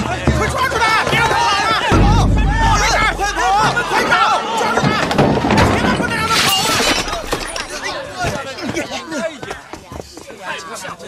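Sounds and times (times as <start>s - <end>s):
people shouting: 0.4s - 8.1s
crash of something breaking: 2.0s - 8.0s.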